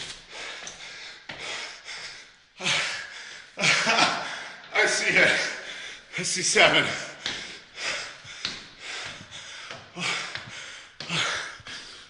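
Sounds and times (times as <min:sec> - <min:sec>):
man panting: 0:00.1 - 0:12.0.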